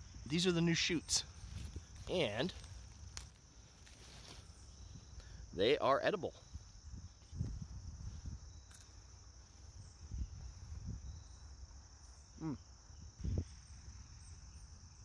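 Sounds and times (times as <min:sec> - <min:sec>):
man humming mm: 0:12.3 - 0:12.7.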